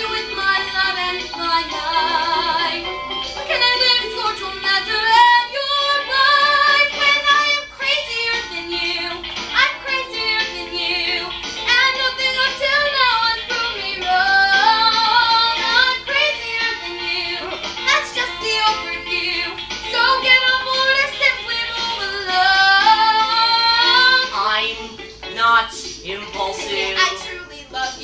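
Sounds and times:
girl singing: 0.0 - 28.0
musical accompaniment: 0.0 - 28.0.

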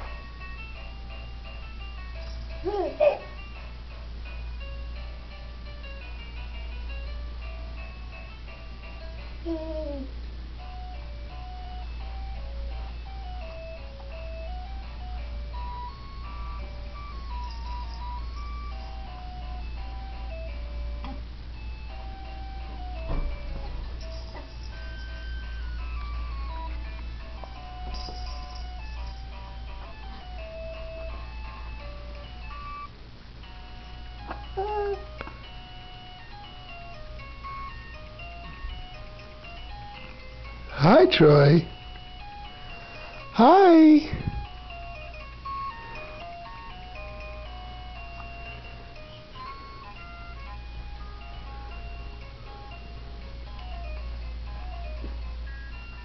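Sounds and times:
steady low hum: 0.0 - 56.0
electronic toy tune: 24.0 - 40.4, 41.2 - 56.0.

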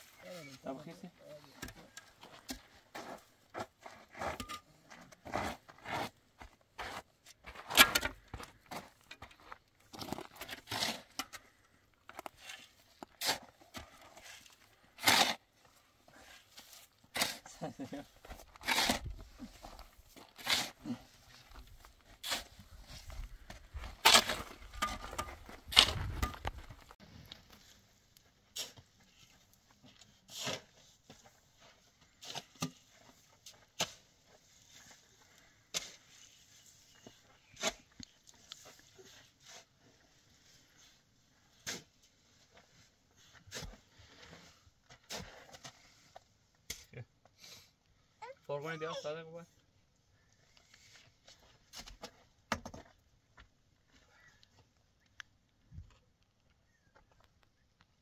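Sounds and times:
shovels scraping sand and gravel: 9.9 - 11.5, 12.1 - 26.6, 28.5 - 46.9.

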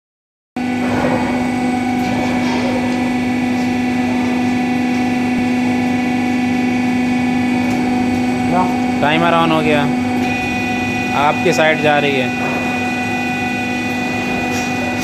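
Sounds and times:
hydraulic pump humming: 0.6 - 15.0.

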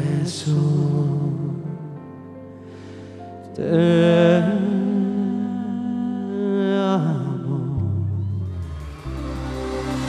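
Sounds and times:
band chord: 8.9 - 10.0.

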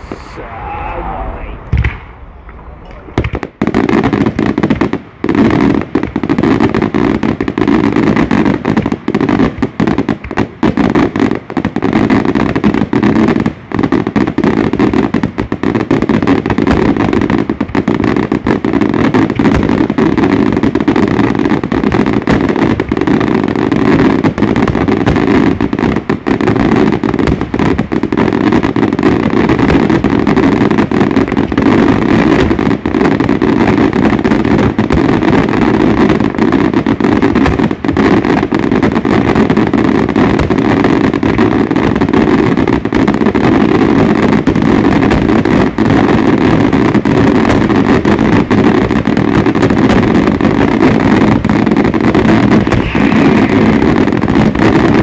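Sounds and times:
fireworks bangs: 0.0 - 55.0.

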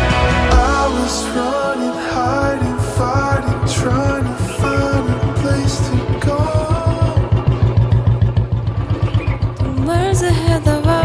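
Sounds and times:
background music: 0.0 - 8.5
motorcycle engine running: 0.0 - 11.0.

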